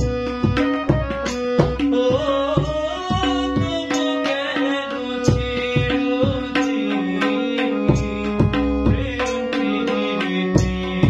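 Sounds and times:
harmonium reed tones: 0:00.0 - 0:11.0
tabla strokes: 0:00.0 - 0:11.0
young man singing: 0:00.1 - 0:11.0.

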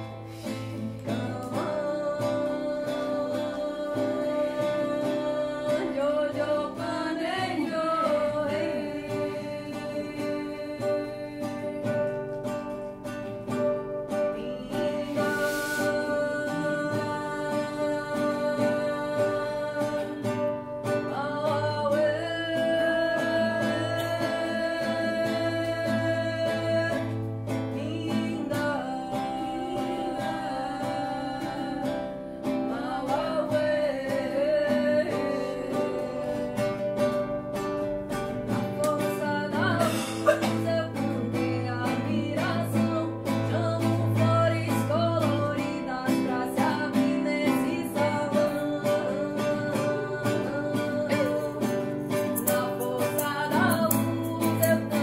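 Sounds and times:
acoustic guitar strumming: 0:00.0 - 0:55.0
voices singing: 0:14.4 - 0:20.2, 0:38.8 - 0:55.0.

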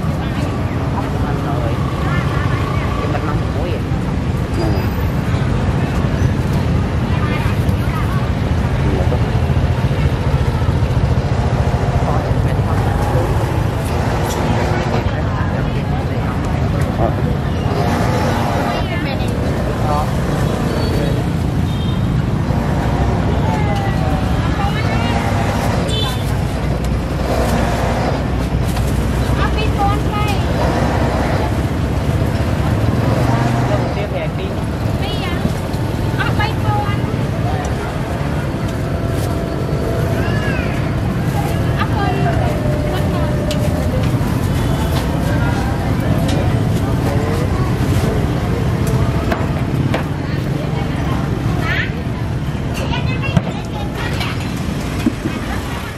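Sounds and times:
people talking: 0:00.0 - 0:21.4, 0:22.5 - 0:31.6, 0:32.7 - 0:55.9
scooter engines idling: 0:00.0 - 0:55.9.

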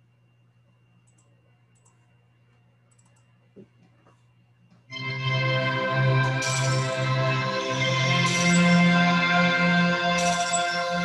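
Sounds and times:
low electrical hum: 0:00.0 - 0:09.9
computer mouse clicks: 0:01.0 - 0:02.0, 0:02.9 - 0:03.3.

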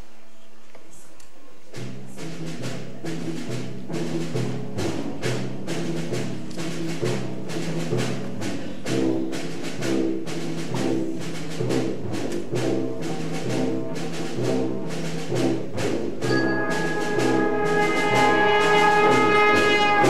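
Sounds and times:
percussion beat: 0:01.7 - 0:20.0
low brass chords: 0:01.8 - 0:20.0
sustained high wind notes: 0:16.3 - 0:20.0.

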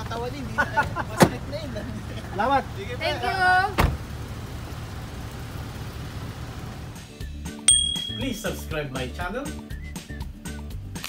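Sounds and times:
voices: 0:00.0 - 0:04.1
car engine running: 0:00.0 - 0:07.1
car door shutting: 0:03.7 - 0:04.1.

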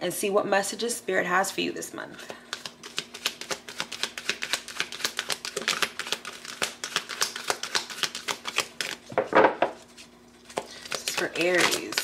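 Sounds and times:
cards being shuffled: 0:02.2 - 0:12.0.

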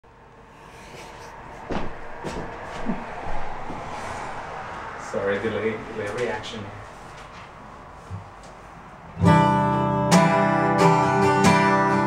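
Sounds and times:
faint room noise: 0:00.1 - 0:09.5.

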